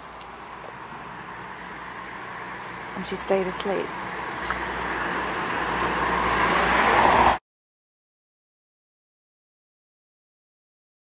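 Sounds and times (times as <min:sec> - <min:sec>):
vehicle passing: 0:00.3 - 0:07.4.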